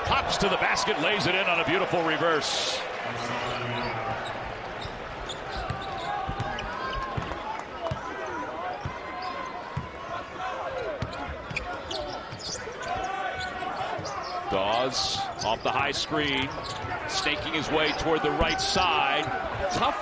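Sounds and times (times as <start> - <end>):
murmur of arena crowd: 0.0 - 20.0.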